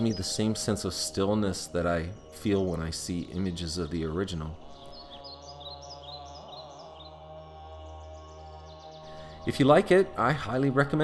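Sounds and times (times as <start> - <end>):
ambient music drone: 0.0 - 11.0
small birds chirping: 0.0 - 11.0.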